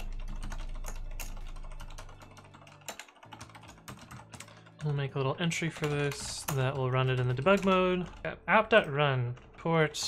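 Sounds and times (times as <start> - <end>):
mechanical keyboard typing: 0.0 - 10.0.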